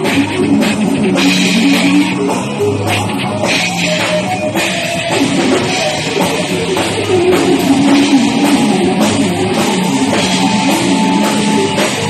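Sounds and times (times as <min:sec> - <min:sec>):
bass guitar: 0:00.0 - 0:12.0
drum kit with cymbals: 0:00.0 - 0:12.0
electric guitar: 0:00.0 - 0:12.0.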